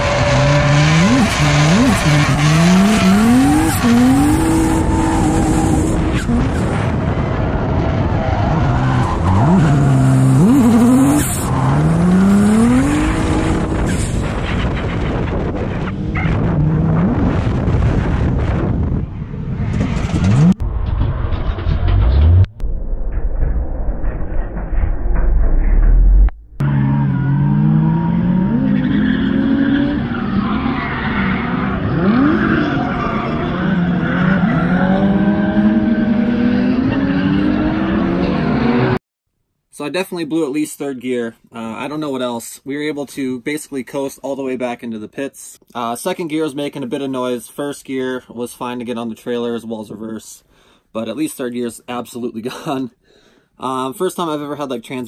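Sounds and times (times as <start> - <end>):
car engine revving hard: 0.0 - 7.0, 7.6 - 14.4, 26.6 - 39.0.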